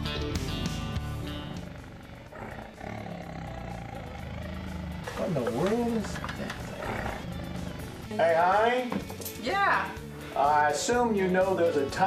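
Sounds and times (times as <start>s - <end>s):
tiger cub vocalizing: 1.1s - 8.2s.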